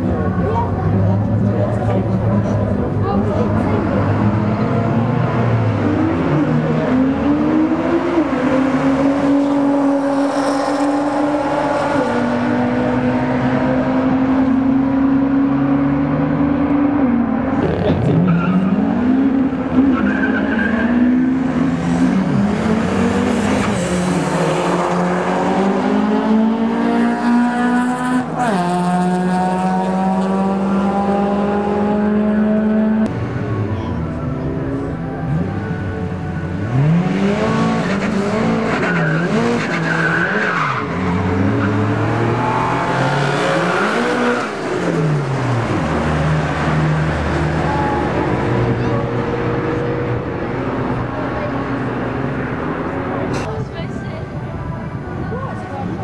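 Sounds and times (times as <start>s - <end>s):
engines revving up and down: 0.0s - 33.4s, 35.2s - 53.5s
car engine accelerating hard: 0.0s - 33.8s, 34.8s - 53.5s.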